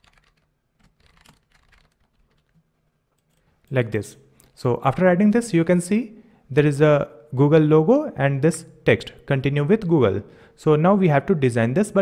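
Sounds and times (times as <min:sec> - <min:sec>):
computer keyboard typing: 0:00.0 - 0:02.6.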